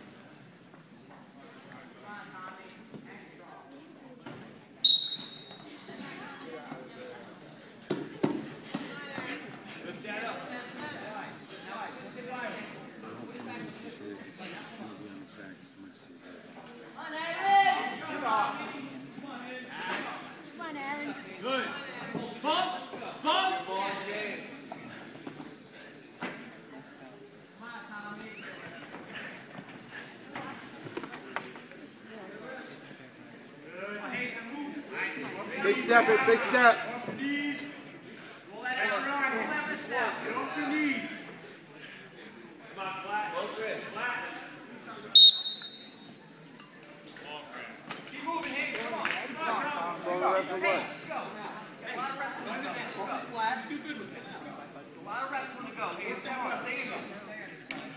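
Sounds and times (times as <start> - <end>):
voices calling out in gymnasium: 0.0 - 57.9.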